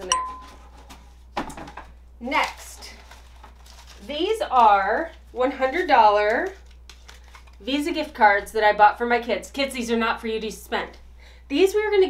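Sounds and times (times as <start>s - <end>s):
single-pitched ding: 0.0s - 0.5s.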